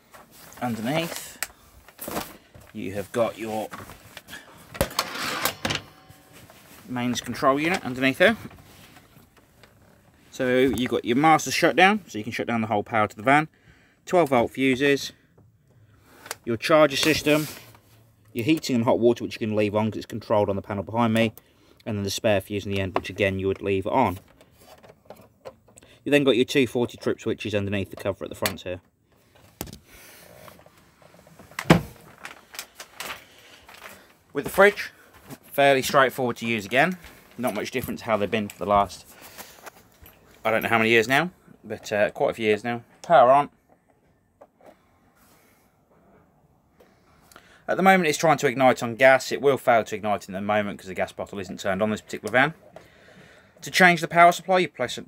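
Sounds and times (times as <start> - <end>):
fabric and wood scraping: 0.0 - 11.2.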